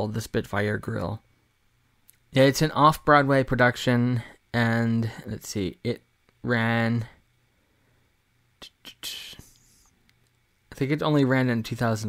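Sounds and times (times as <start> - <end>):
breathy whispered sound: 8.6 - 10.0.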